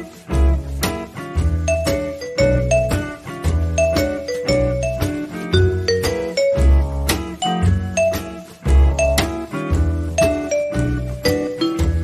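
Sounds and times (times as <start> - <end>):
sustained bass line: 0.0 - 12.0.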